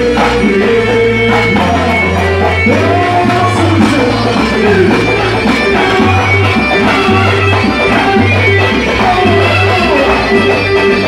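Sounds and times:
bagpipe-like melody: 0.0s - 11.0s
folk dance band through speakers: 0.0s - 11.0s
hand drums: 0.0s - 11.0s.

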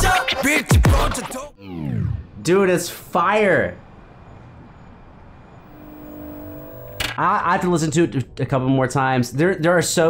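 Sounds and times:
low rumbling ambience: 3.8s - 9.4s
faint steady held tone: 5.6s - 7.1s.

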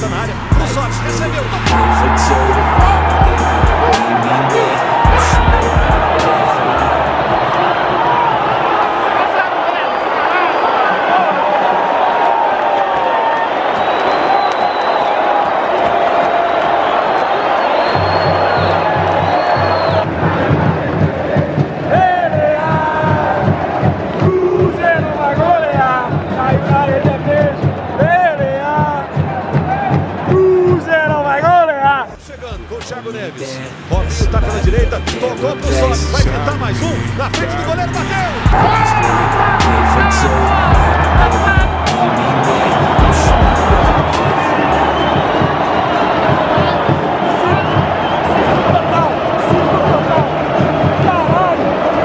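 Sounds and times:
steady low beat: 0.0s - 7.5s, 32.1s - 33.1s, 33.9s - 51.9s
close voices shouting and singing: 0.0s - 11.8s, 18.3s - 52.0s
stadium crowd chanting and singing: 0.0s - 52.0s.

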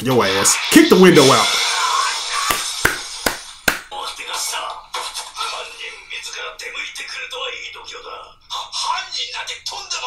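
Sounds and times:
sharp knocks: 2.5s - 3.9s.

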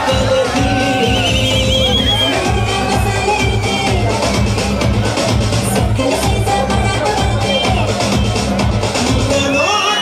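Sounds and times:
dance song with steady beat: 0.0s - 10.0s.

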